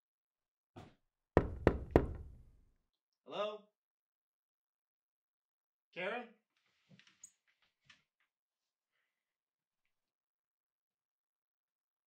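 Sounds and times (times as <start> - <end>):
knocks on a door: 1.4 - 2.5.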